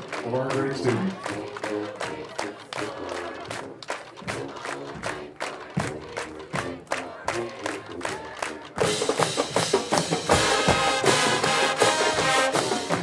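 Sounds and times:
crowd noise: 0.0 - 13.0
marching band music: 0.0 - 13.0
steady drum beat: 0.0 - 13.0.

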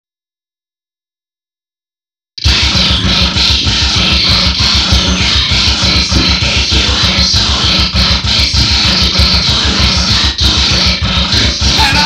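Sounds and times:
fast kick-drum beat: 2.4 - 12.0
heavy music with distorted guitar: 2.4 - 12.0.

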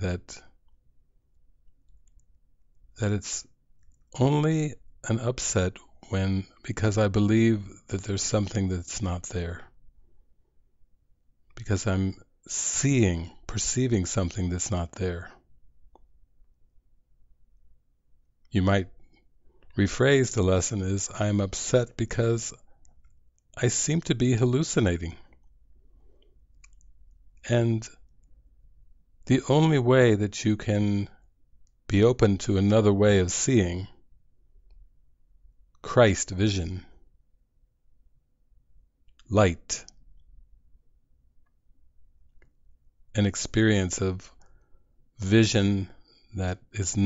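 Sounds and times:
man speaking: 0.0 - 0.6, 3.0 - 9.8, 11.6 - 15.4, 18.5 - 19.0, 19.8 - 22.6, 23.6 - 25.3, 27.4 - 28.1, 29.2 - 31.2, 31.9 - 34.0, 35.8 - 36.9, 39.2 - 39.9, 43.2 - 44.3, 45.2 - 47.0
mouth clicks: 26.5 - 26.9
faint breath: 44.4 - 45.0.

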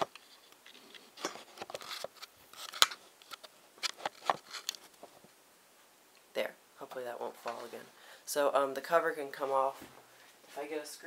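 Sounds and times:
camera handling clicks and scrapes: 0.1 - 4.9.

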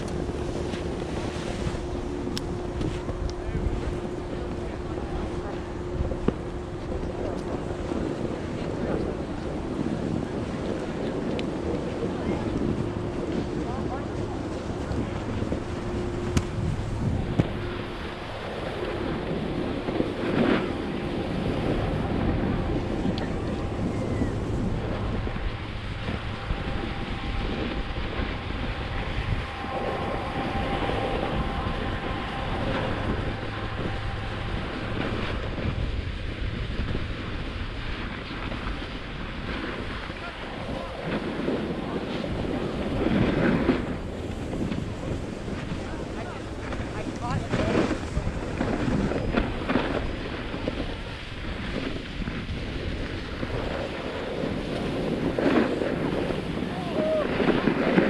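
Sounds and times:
snowboard scraping over snow: 0.0 - 4.0, 8.0 - 58.0
wind on microphone: 0.0 - 58.0.

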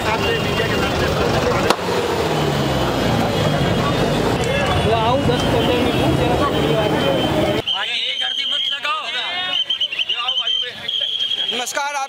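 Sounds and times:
crowd voices talking and calling: 0.0 - 12.0.

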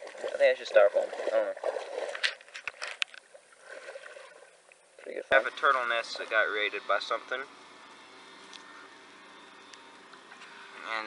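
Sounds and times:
light ticks: 9.6 - 10.6.

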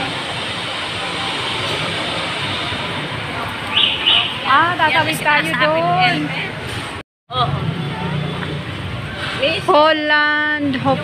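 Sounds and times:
shopping mall background noise: 0.0 - 11.0.

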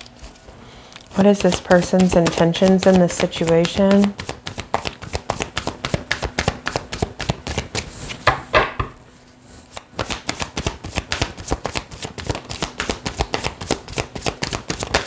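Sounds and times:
cards being shuffled: 1.0 - 8.2, 9.7 - 15.0.

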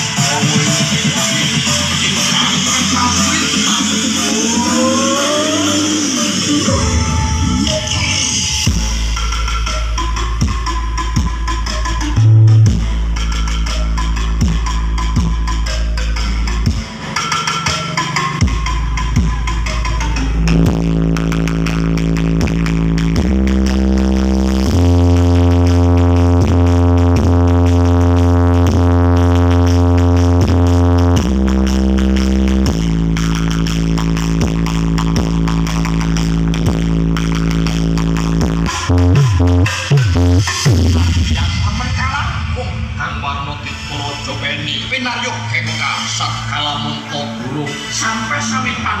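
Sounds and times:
electronic dance music with heavy bass: 0.0 - 49.0
long held bass notes: 12.2 - 13.2, 18.5 - 41.2.

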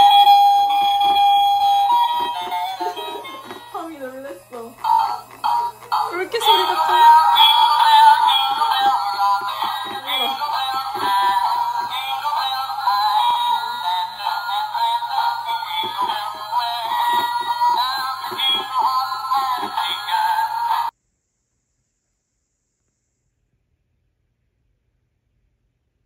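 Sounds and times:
tinny toy song: 0.0 - 20.9.

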